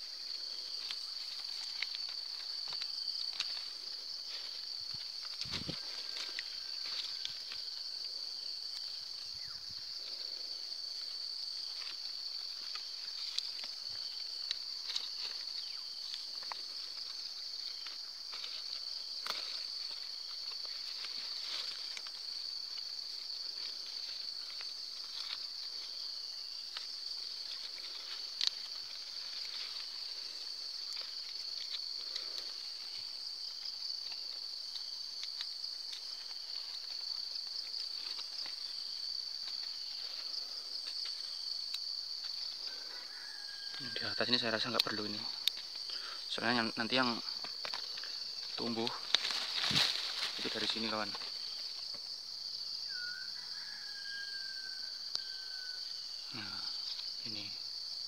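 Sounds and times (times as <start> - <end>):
high-pitched insect chorus: 0.0 - 58.0.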